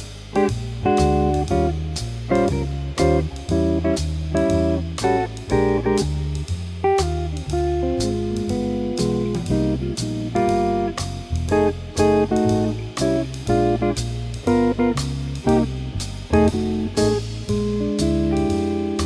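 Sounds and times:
drums keeping swing pulse: 0.0 - 19.0
electric guitar comping jazz chords: 0.0 - 19.0
walking bass: 0.0 - 19.0.

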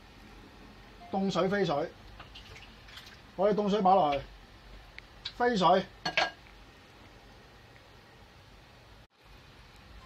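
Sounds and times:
low steady background hum: 0.0 - 10.0.

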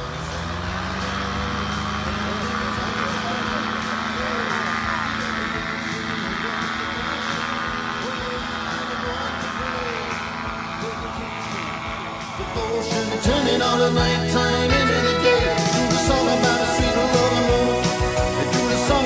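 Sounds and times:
music: 0.0 - 19.0
paramotor engine and propeller: 0.0 - 19.0.

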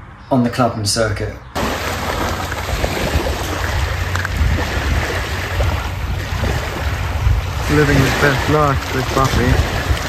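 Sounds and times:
wind rumbling on microphone: 1.4 - 10.0
dog splashing through water: 1.6 - 7.0
waves washing onto pebbles: 1.6 - 10.0.

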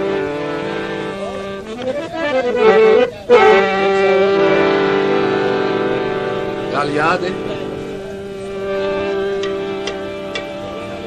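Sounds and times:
harmonium sustained notes: 0.0 - 11.0.

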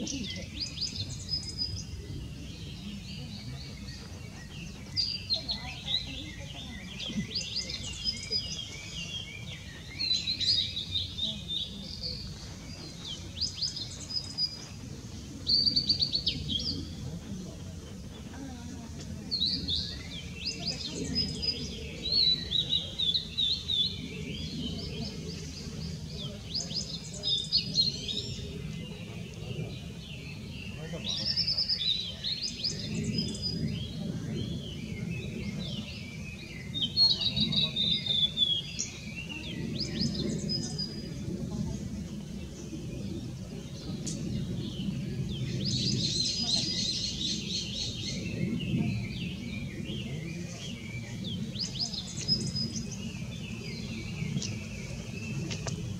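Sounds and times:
bird singing: 0.0 - 55.9.

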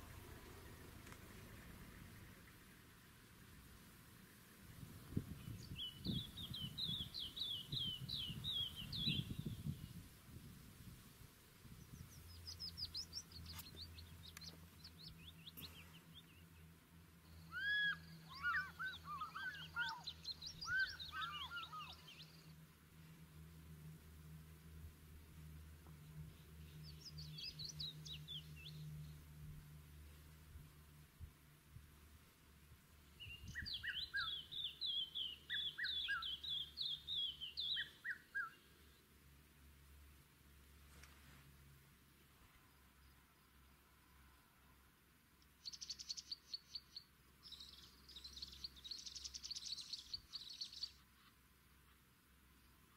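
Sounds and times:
birds chirping: 5.1 - 10.0, 11.7 - 22.6, 25.9 - 29.2, 33.1 - 38.9, 45.6 - 51.2
whistled bird calls: 17.3 - 22.5, 33.2 - 38.6.

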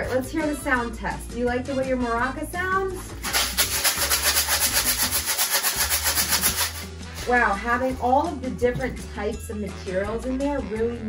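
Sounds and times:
plastic bottle maraca rattling: 3.1 - 7.3.

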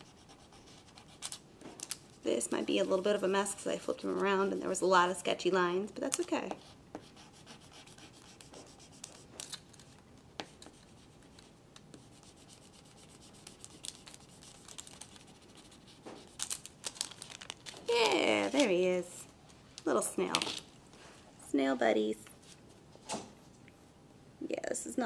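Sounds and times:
pen scratching on paper: 0.0 - 1.4, 6.6 - 9.3, 10.5 - 16.3
woman speaking: 2.2 - 6.6, 17.9 - 20.6, 21.4 - 22.4, 24.4 - 25.0
paper rustling: 13.4 - 18.8.

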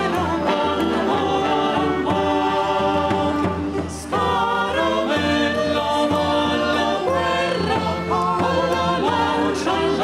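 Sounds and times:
choir singing held notes: 0.0 - 10.0.

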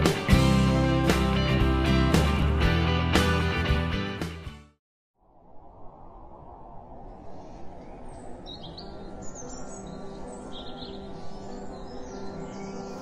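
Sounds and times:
small birds chirping: 7.4 - 13.0.

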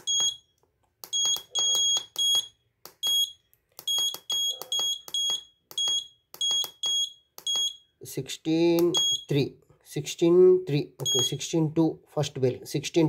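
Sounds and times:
high-pitched buzzer beeps: 0.0 - 0.4, 11.0 - 11.4
buzzer clicks: 0.0 - 7.8.

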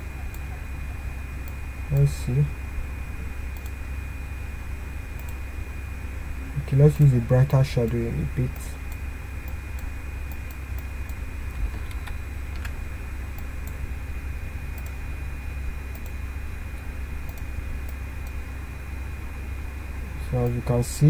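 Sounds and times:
low hum and hiss: 0.0 - 21.0
computer mouse clicks: 3.6 - 3.8, 5.2 - 5.4, 8.9 - 12.8, 14.8 - 15.0, 15.9 - 16.2, 17.3 - 17.5.

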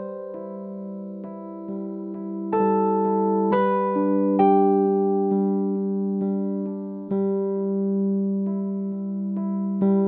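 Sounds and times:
keyboard music chords: 0.0 - 10.0.

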